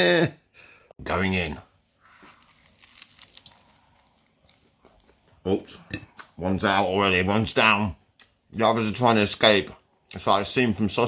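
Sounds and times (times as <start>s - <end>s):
soft crackles: 2.0s - 5.5s
biting and chewing bread: 2.0s - 6.3s.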